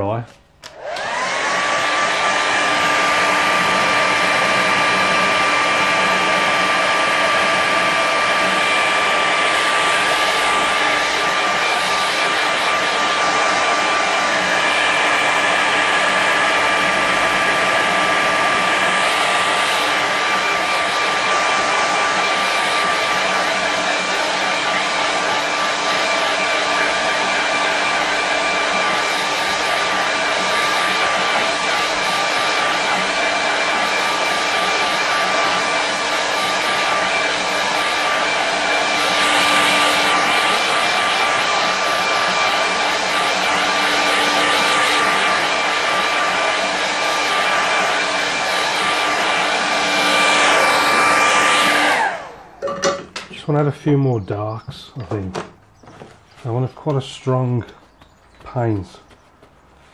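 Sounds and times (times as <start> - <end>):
hair dryer blowing: 0.0 - 54.1.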